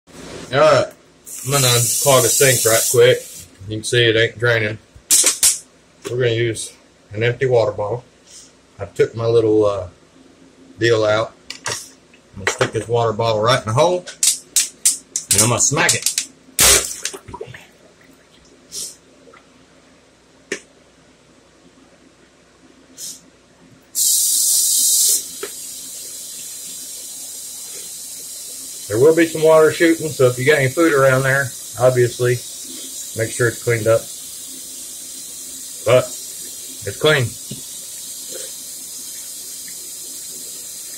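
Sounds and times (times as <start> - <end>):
faucet running into basin: 1.3 - 3.5, 24.1 - 40.9
water splashing: 16.6 - 18.6.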